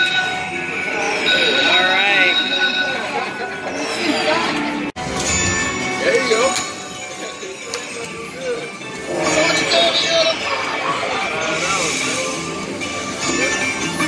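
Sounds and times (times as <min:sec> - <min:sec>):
crowd chatter: 0:00.0 - 0:14.0
slot machine bonus music: 0:00.0 - 0:14.0
slot machine chimes and jingle: 0:00.0 - 0:14.0.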